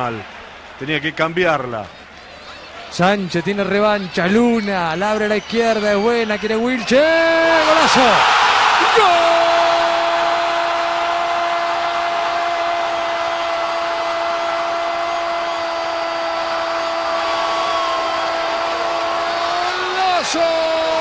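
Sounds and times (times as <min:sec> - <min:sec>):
stadium crowd noise: 0:00.0 - 0:21.0.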